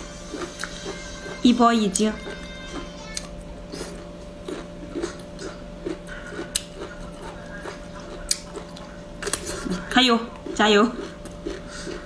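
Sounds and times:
person chewing: 0.0s - 12.0s
steady low hum: 0.0s - 12.0s.

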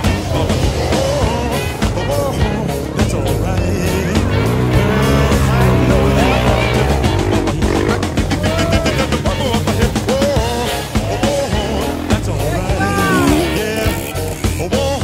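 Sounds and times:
background music: 0.0s - 15.0s
motorcycle engines revving: 0.0s - 15.0s.

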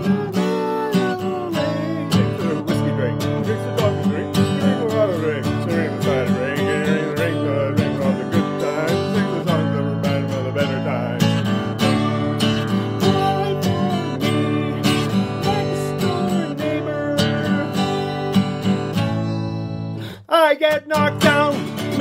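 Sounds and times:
man singing: 0.0s - 19.0s, 20.0s - 22.0s
acoustic guitar strumming: 0.0s - 22.0s.

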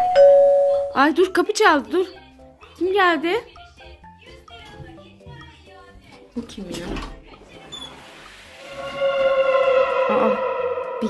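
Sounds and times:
held musical note: 8.5s - 11.0s.

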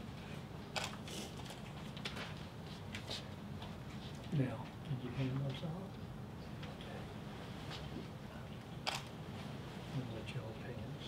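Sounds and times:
room ambience: 0.0s - 11.0s
camera shutter click: 8.8s - 9.1s.

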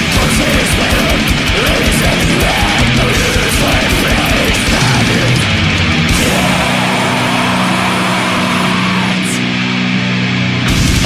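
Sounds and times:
distorted guitars droning: 0.0s - 11.0s.

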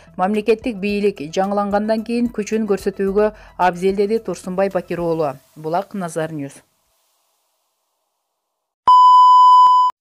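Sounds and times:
electronic beep: 8.9s - 10.0s.

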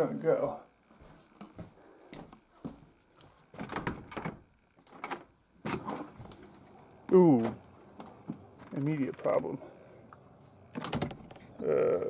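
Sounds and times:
footsteps: 0.9s - 3.6s, 6.1s - 10.6s
storm door opening: 5.0s - 9.3s, 10.6s - 11.6s.

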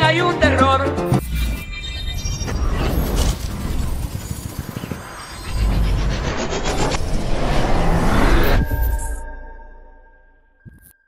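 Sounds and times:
fluttering noisy swoosh: 2.5s - 9.2s.

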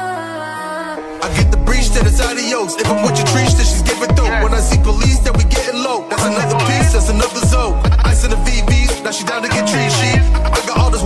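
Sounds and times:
rapping over a beat: 0.0s - 11.0s
sliding bass notes: 1.3s - 2.3s, 2.9s - 5.6s, 6.3s - 9.0s, 9.7s - 11.0s.

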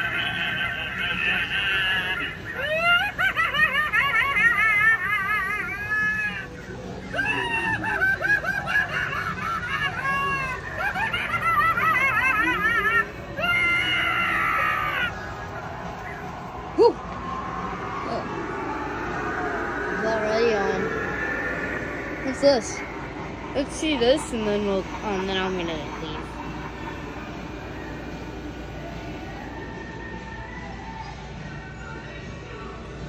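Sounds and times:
warbling recorded laughs and screams: 0.0s - 32.2s.

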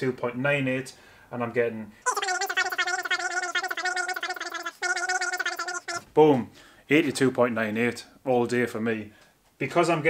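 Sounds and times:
sped up high-pitched voice: 2.1s - 6.1s.

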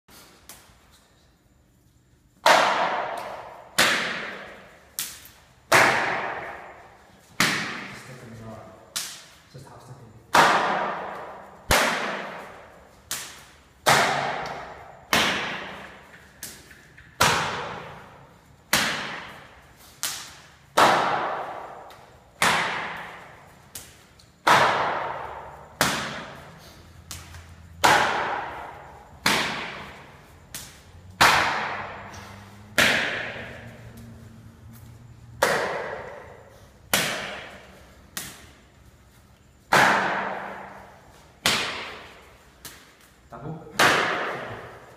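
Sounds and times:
slaps and thuds on body: 2.4s - 8.2s, 8.9s - 9.4s, 10.3s - 38.6s, 39.7s - 43.1s, 43.7s - 44.9s.

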